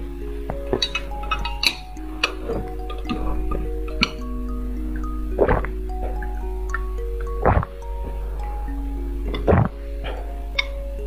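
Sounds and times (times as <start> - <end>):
soft melody of held notes: 0.0 - 11.0.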